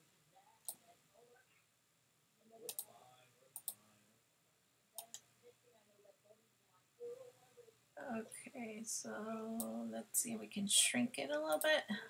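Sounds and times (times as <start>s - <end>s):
computer mouse clicking: 2.7s - 2.9s, 3.6s - 3.8s.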